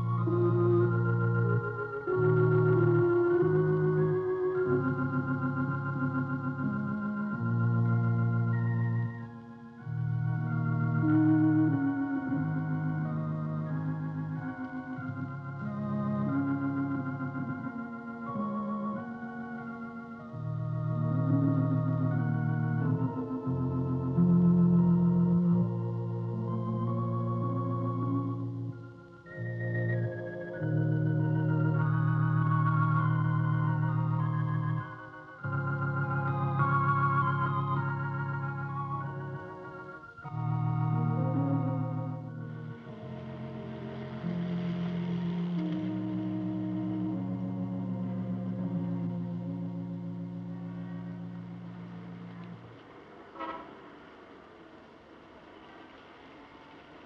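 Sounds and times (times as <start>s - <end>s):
church organ chords: 0.0s - 54.2s
soft hiss: 41.6s - 57.0s.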